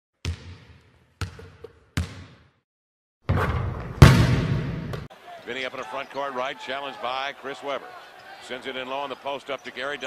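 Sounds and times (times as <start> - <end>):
basketball bouncing with echo: 0.2 - 2.6, 3.3 - 5.1.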